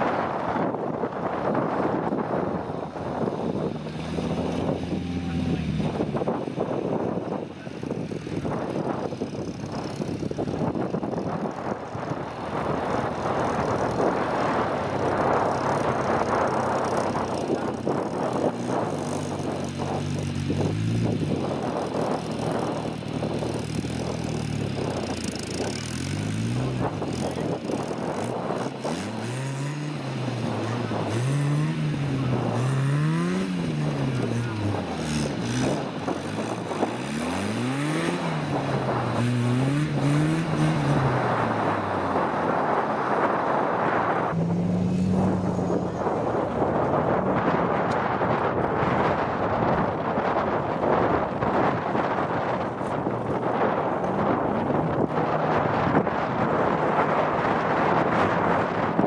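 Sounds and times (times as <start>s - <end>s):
wheels spinning on grass: 0.0s - 59.0s
car engine revving: 2.3s - 49.4s.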